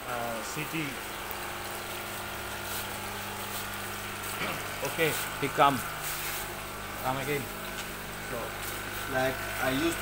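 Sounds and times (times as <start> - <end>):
electric water pump humming: 0.0 - 10.0
water flowing: 0.0 - 10.0.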